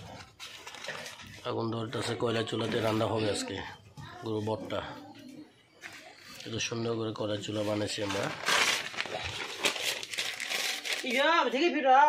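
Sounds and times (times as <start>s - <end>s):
light crinkling: 0.0s - 2.1s, 5.2s - 11.6s
rustling: 7.5s - 11.3s.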